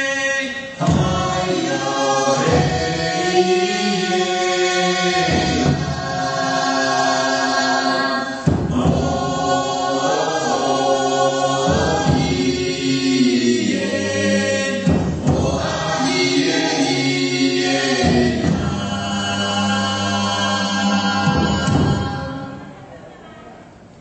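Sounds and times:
choir singing long chords: 0.0s - 22.9s.

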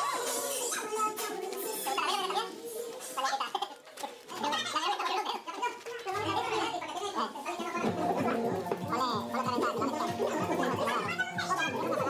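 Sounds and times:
indistinct voices talking: 6.1s - 12.0s.

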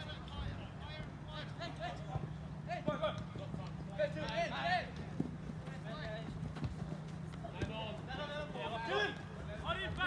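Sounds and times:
players shouting: 7.3s - 10.0s.

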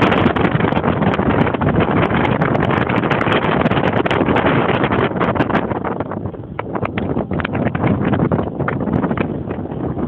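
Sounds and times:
car running noise: 0.0s - 10.0s
wind buffeting microphone: 0.0s - 10.0s.

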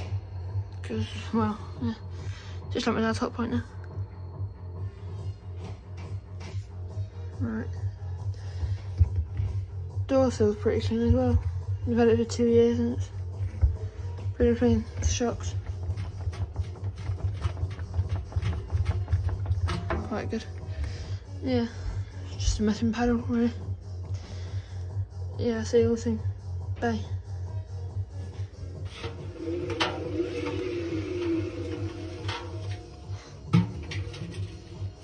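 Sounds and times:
steady low hum: 0.0s - 35.0s
wavering hum: 27.3s - 35.0s
knocks on steel washing machine drum: 33.5s - 34.5s.

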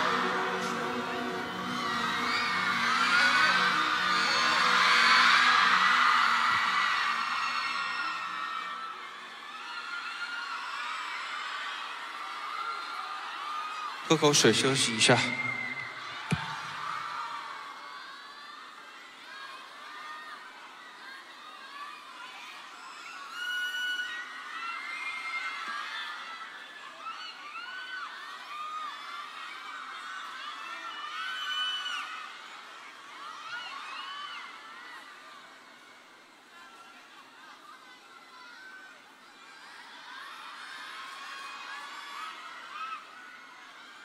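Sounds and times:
crowd shouting and cheering: 0.0s - 44.0s.

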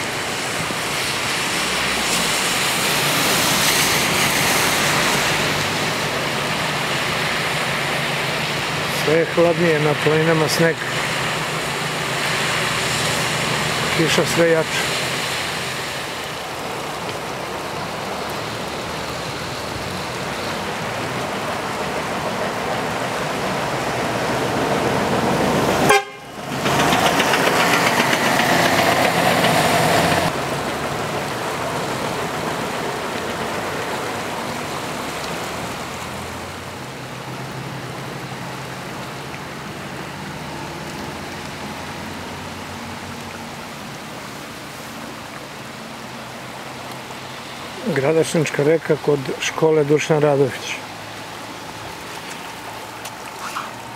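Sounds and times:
river rushing in flood: 0.0s - 53.9s.

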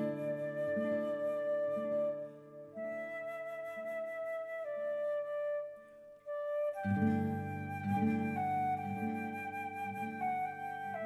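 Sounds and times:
slow flute melody: 0.0s - 11.0s
soft sustained accompaniment: 6.3s - 11.0s.

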